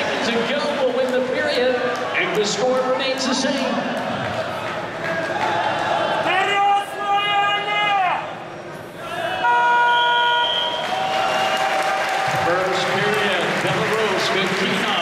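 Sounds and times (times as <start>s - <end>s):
crowd noise: 0.0s - 15.0s
arena horn buzzer: 9.4s - 10.8s.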